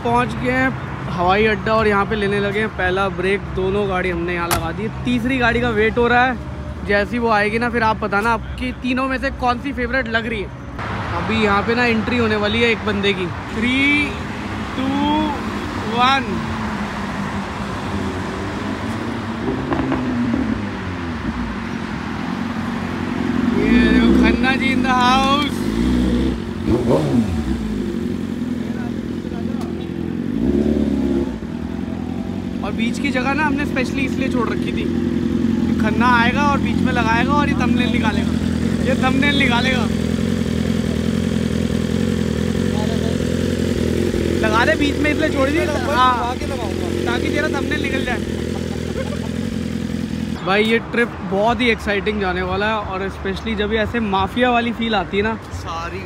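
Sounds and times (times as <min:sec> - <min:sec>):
highway traffic passing: 0:00.0 - 0:56.0
motorcycle engine: 0:10.5 - 0:50.8.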